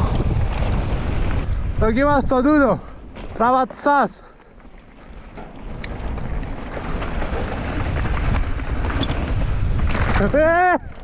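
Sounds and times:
wind on camera mic: 0:00.0 - 0:02.8, 0:05.5 - 0:11.0
bike tyres rolling on dirt trail: 0:00.0 - 0:11.0.

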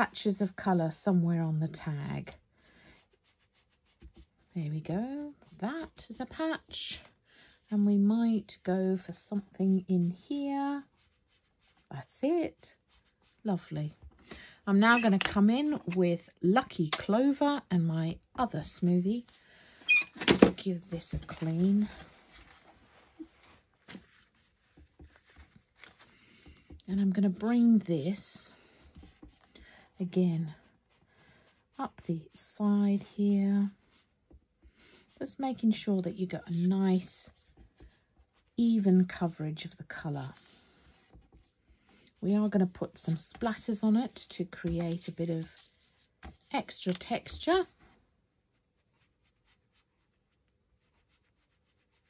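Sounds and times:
cloth rubbing: 0:20.8 - 0:26.0.

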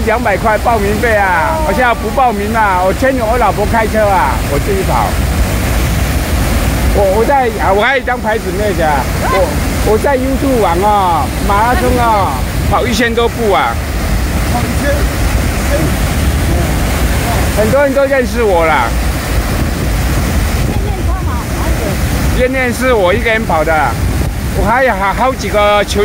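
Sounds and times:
water rushing from tunnel outlet: 0:00.0 - 0:26.0
wind buffeting microphone: 0:00.0 - 0:26.0.

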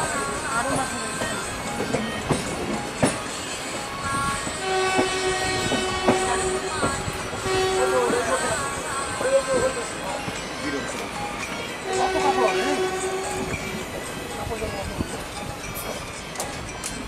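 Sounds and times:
train wheels rumbling on track: 0:00.0 - 0:17.0
locomotive horn blast: 0:04.6 - 0:08.2, 0:11.8 - 0:13.7.

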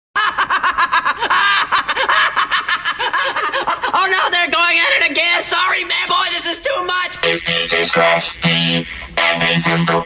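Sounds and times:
person laughing: 0:00.2 - 0:05.2.

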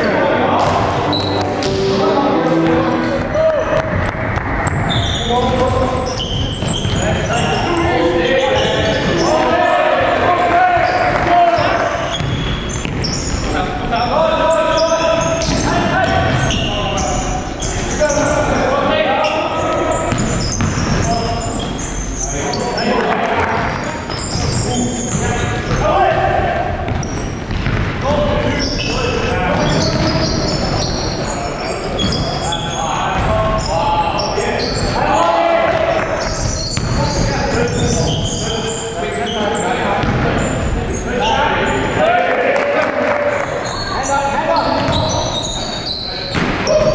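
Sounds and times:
players calling out: 0:00.0 - 0:46.9
basketball bouncing on court: 0:00.6 - 0:00.9, 0:02.6 - 0:09.4, 0:10.8 - 0:13.6, 0:15.2 - 0:16.7, 0:20.0 - 0:21.9, 0:23.4 - 0:28.8, 0:33.2 - 0:33.7, 0:35.7 - 0:38.1, 0:40.0 - 0:40.6, 0:44.7 - 0:45.2.

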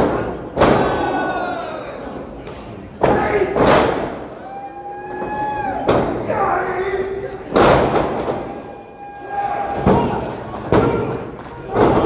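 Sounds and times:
long held shout: 0:04.4 - 0:05.9, 0:08.5 - 0:10.3
body hitting wrestling ring canvas: 0:09.7 - 0:12.0.

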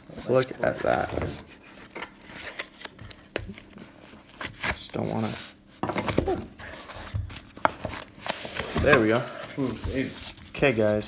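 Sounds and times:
cardboard rubbing and scraping: 0:06.6 - 0:11.0.

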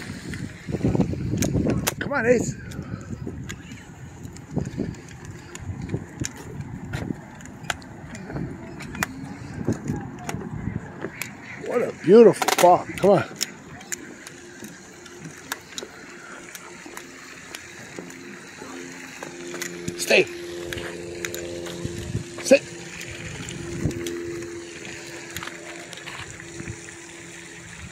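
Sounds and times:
low motor hum: 0:00.0 - 0:27.9
footsteps on wooden boards: 0:04.9 - 0:08.9.

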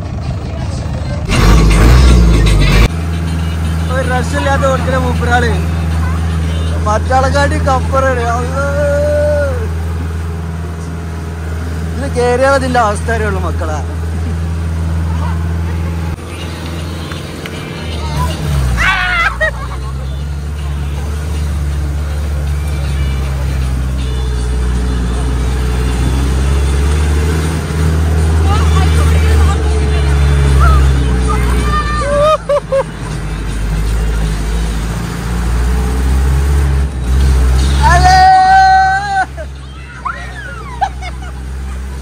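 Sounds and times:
jeep engine running: 0:00.0 - 0:42.0
passengers shouting: 0:03.8 - 0:10.2, 0:14.9 - 0:21.3, 0:28.0 - 0:32.8, 0:37.8 - 0:42.0.

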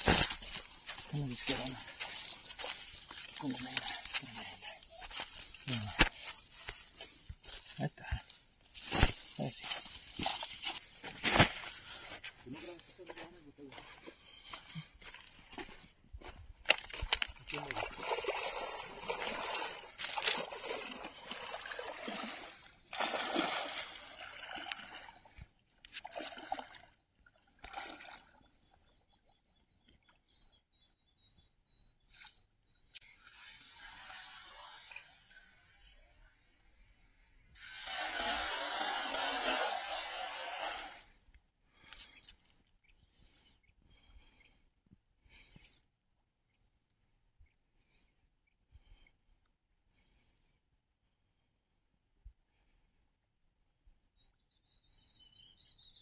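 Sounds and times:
water sloshing as person wades: 0:16.7 - 0:28.5
cast net splashing on water: 0:17.7 - 0:25.1.

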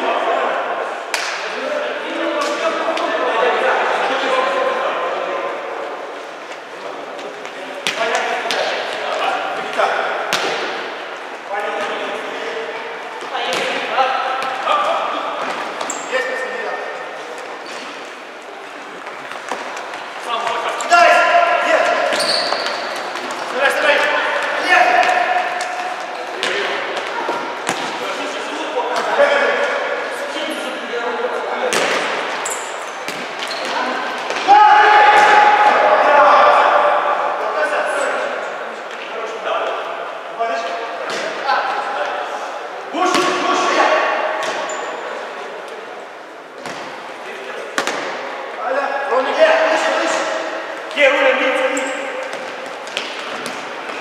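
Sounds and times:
players shouting in a hall: 0:33.7 - 0:38.6.

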